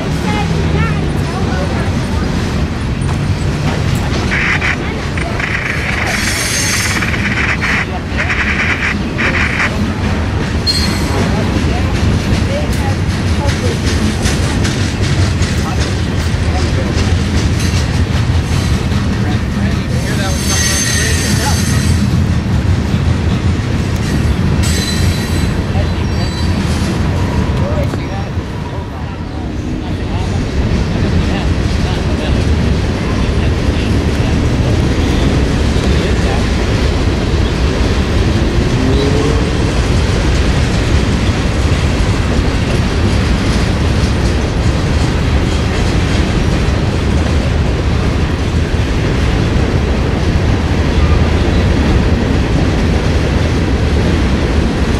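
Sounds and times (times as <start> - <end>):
freight train wheels rumbling on rail: 0.0 - 54.9
high-pitched wheel squeals: 10.7 - 11.1, 20.3 - 22.0, 24.6 - 26.6.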